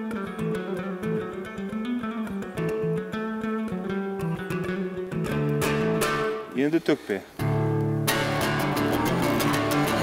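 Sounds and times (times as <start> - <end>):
electric dombra strummed rapidly: 0.0 - 6.5, 7.4 - 10.0.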